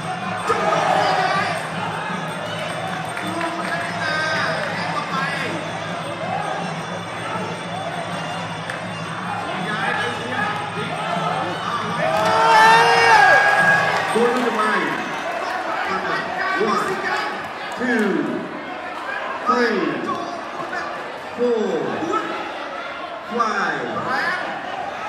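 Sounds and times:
ringside music: 0:00.0 - 0:17.0
crowd shouting and cheering: 0:00.0 - 0:25.0
loud drawn-out shout: 0:00.3 - 0:02.1, 0:11.0 - 0:14.3.

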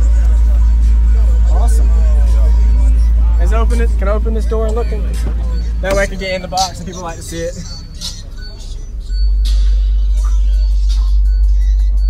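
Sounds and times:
deep sub-bass from car audio: 0:00.0 - 0:12.0
faint voices: 0:00.0 - 0:12.0.

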